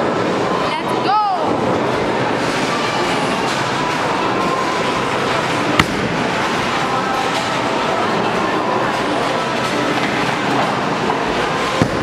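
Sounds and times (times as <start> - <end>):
sharp crack: 5.8 - 6.4.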